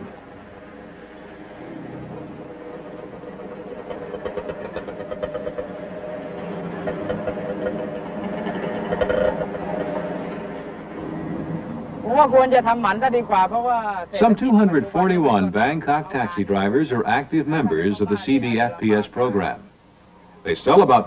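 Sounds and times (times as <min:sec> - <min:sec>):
vehicle engine running: 0:00.0 - 0:20.8.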